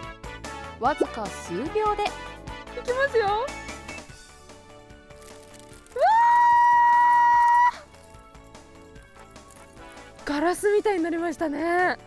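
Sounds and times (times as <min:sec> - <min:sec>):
soft background music: 0:00.0 - 0:12.0.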